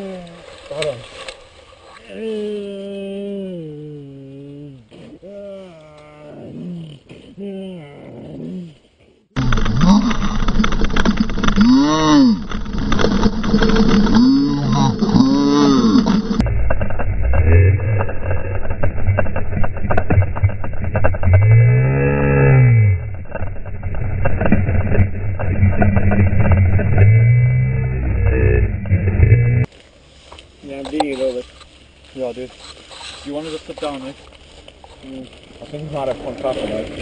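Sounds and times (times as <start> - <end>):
deep slowed-down voice sounds: 2.1 - 8.8, 9.4 - 29.7
rumble of wind and trail noise: 8.0 - 37.0.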